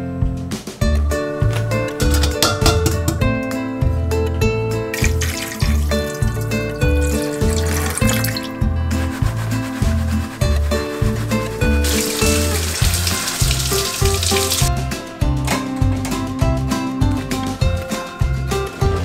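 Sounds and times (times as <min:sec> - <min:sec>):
background music with steady beat: 0:00.0 - 0:19.0
water running: 0:04.8 - 0:14.8
water pouring into sink strainer: 0:05.0 - 0:14.7.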